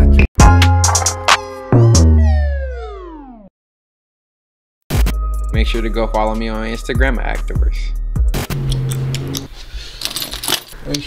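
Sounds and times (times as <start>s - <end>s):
metallic clinking and jingling: 10.0s - 11.0s.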